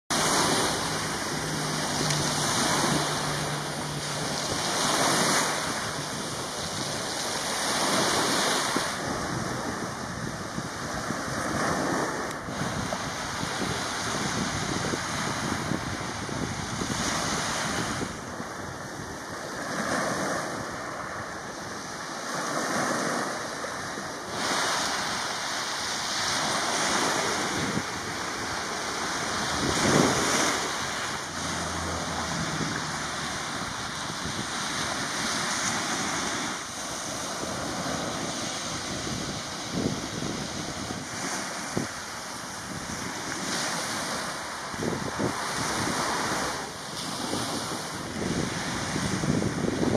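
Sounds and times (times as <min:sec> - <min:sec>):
surf washing on pebble shore: 0:00.1 - 0:49.9.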